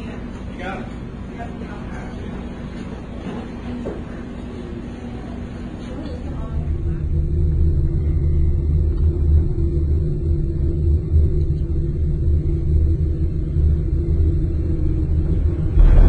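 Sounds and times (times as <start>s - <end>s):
gondola cabin rumble: 4.9s - 16.0s.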